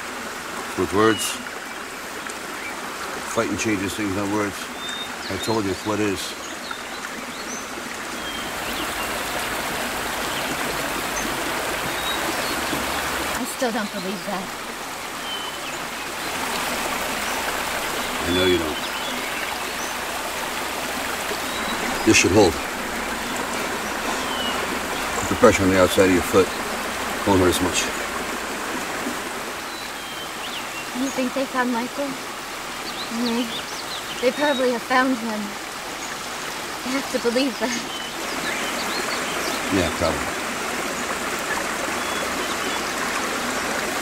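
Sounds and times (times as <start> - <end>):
stream flowing water: 0.0 - 44.0.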